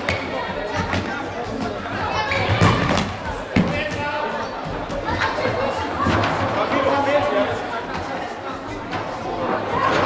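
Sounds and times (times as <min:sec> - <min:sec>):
voices echoing in sports hall: 0:00.0 - 0:10.0.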